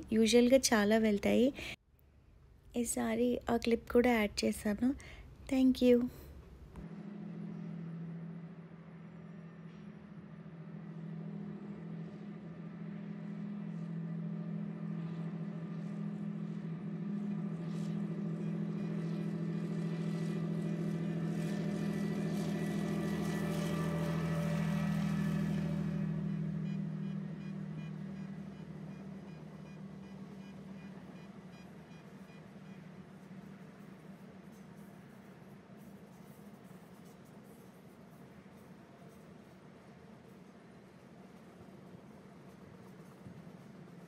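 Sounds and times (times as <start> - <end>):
wheel rumble and clatter: 6.4 - 44.0.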